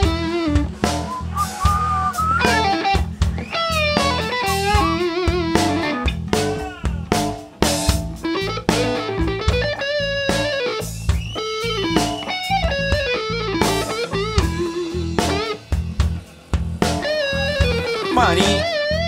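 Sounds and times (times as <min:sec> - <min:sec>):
electric guitar lead lines: 0:00.0 - 0:06.2, 0:08.2 - 0:15.7, 0:17.0 - 0:19.0
live rock band playing blues: 0:00.0 - 0:19.0.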